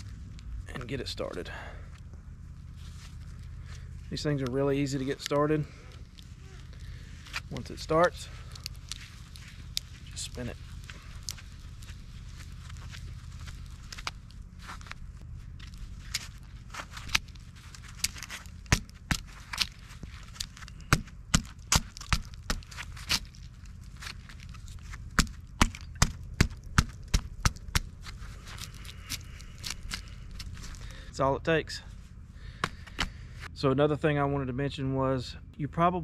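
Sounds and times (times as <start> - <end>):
tree step clicking and creaking: 15.6 - 30.6.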